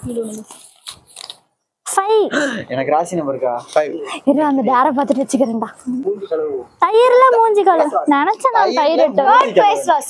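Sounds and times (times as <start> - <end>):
paper crinkling: 0.1 - 1.4.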